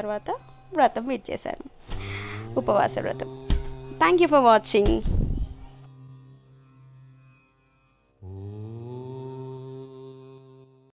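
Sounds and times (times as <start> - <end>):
deep voice chanting: 1.9 - 7.2, 8.2 - 11.0.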